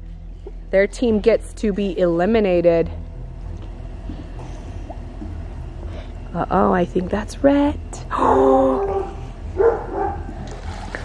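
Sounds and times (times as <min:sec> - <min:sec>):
muffled underwater rumble: 0:00.0 - 0:11.0.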